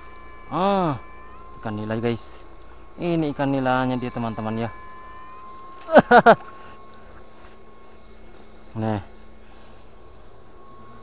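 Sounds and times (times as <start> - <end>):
thin electrical whine: 0.0 - 11.0.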